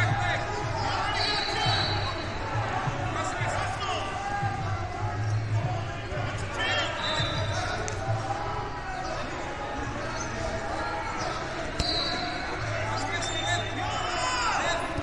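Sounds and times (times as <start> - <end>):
overlapping voices: 0.0 - 15.0.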